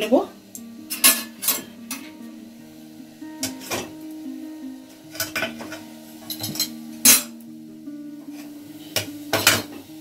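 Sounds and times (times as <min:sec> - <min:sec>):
soft background music: 0:00.0 - 0:10.0
metal steamer ware clinking: 0:00.9 - 0:02.1, 0:05.1 - 0:07.4, 0:08.3 - 0:09.9.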